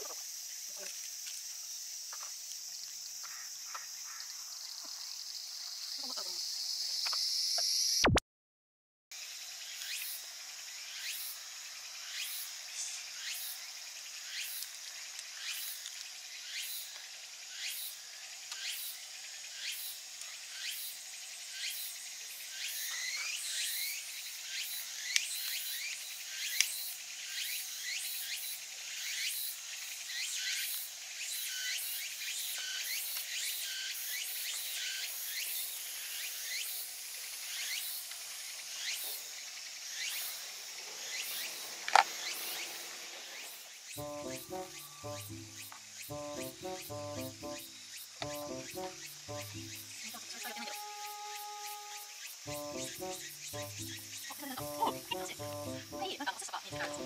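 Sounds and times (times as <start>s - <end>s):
insects chirping: 0.0s - 8.1s, 9.2s - 57.0s.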